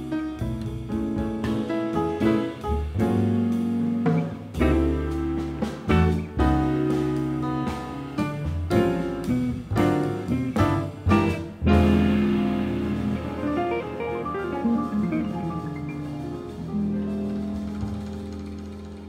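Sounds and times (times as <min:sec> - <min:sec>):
jazz quartet playing: 0:00.0 - 0:19.0.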